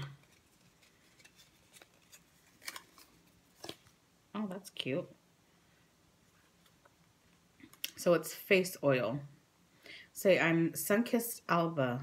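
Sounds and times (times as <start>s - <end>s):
cardboard box and paper rustling: 0.2s - 3.9s.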